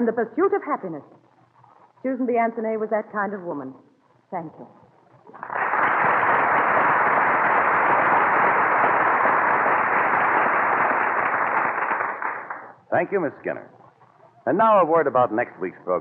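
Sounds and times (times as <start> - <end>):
studio audience applauding: 5.3 - 12.8.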